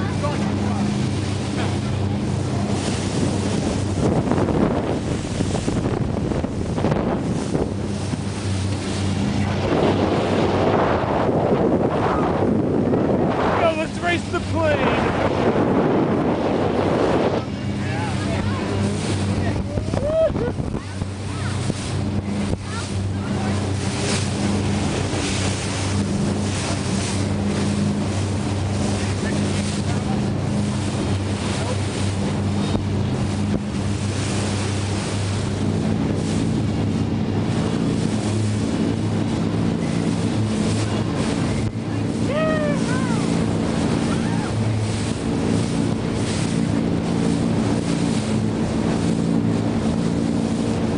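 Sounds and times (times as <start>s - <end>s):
motorboat engine running: 0.0s - 50.9s
water rushing past hull: 0.0s - 50.9s
wind buffeting microphone: 0.0s - 50.9s.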